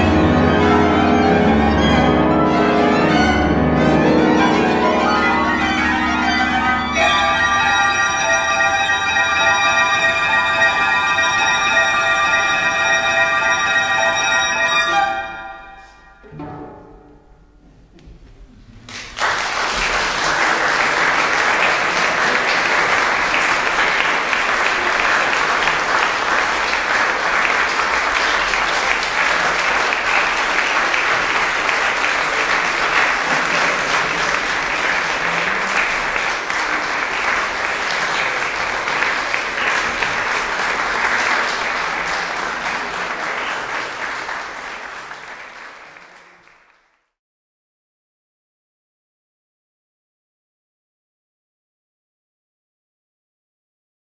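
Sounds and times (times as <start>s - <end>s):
audience applauding: 0.0s - 14.9s, 18.9s - 47.1s
music: 0.0s - 18.0s.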